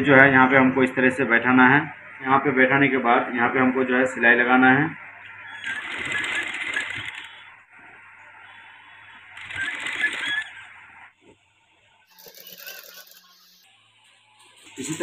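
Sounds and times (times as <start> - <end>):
sewing machine rattling: 5.6 - 7.3, 9.4 - 10.5.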